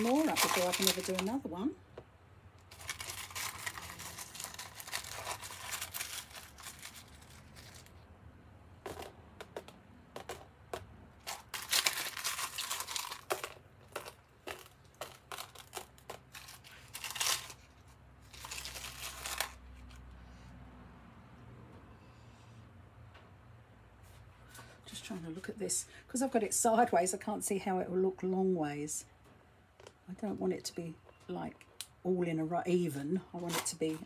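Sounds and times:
hands rustling and crinkling: 0:00.0 - 0:01.5, 0:02.6 - 0:08.1, 0:08.9 - 0:20.0.

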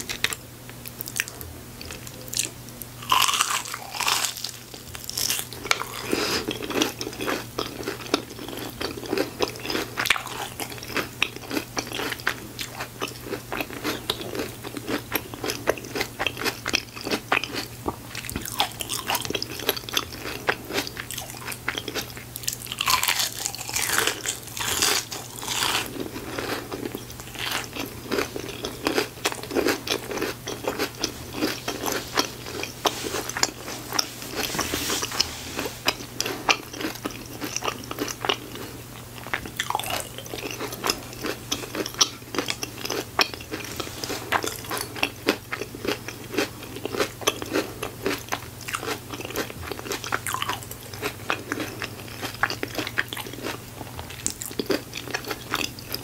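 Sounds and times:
chewing: 0:00.0 - 0:56.0
crunchy bites of fried food: 0:00.0 - 0:56.0
faint low hum: 0:00.0 - 0:56.0.

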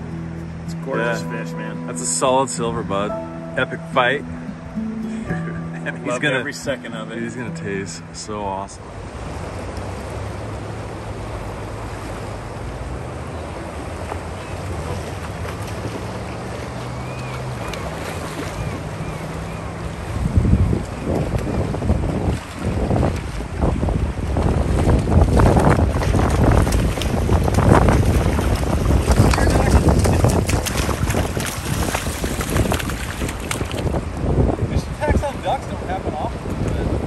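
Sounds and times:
rushing river water: 0:00.0 - 0:37.0
water splashing: 0:05.1 - 0:34.3
wind buffeting microphone: 0:13.7 - 0:37.0.

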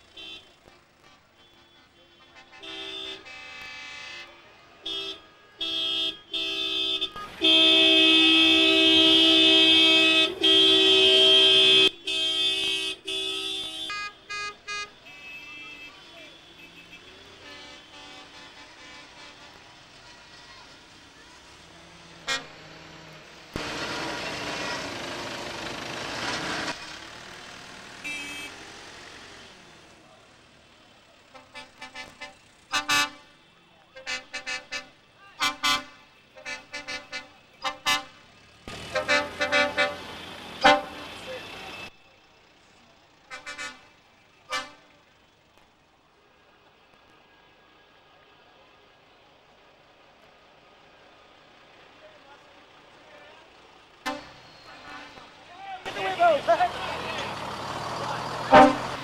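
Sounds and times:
vehicle horns tooting: 0:00.1 - 0:20.7, 0:22.2 - 0:22.6, 0:28.0 - 0:28.7, 0:31.3 - 0:42.0, 0:43.2 - 0:45.0, 0:54.0 - 0:59.0
vehicle engines running: 0:06.2 - 0:59.0
rush of passing vehicle: 0:16.0 - 0:31.3, 0:38.2 - 0:43.2, 0:49.7 - 0:59.0.

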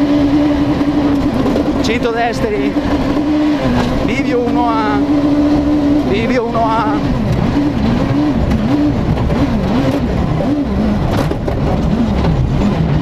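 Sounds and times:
rally car engine revving: 0:00.0 - 0:13.0
tyres rumbling on gravel: 0:00.0 - 0:13.0.

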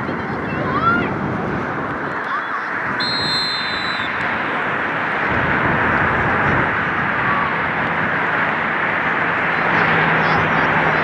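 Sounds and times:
steady rushing outdoor noise: 0:00.0 - 0:11.0
short high whistle tone: 0:03.0 - 0:04.2.

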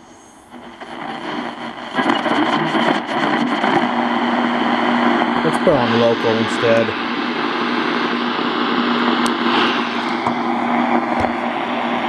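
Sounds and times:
radio static hiss: 0:00.0 - 0:12.0
low hum: 0:03.9 - 0:12.0.

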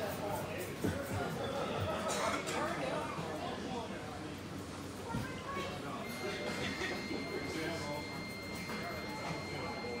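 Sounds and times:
indistinct chatter in echoing hall: 0:00.0 - 0:10.0.

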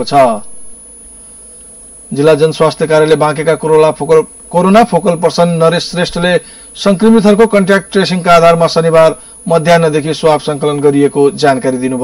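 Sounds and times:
man's voice: 0:00.0 - 0:00.5, 0:02.1 - 0:12.0
steady low hum: 0:00.0 - 0:12.0.

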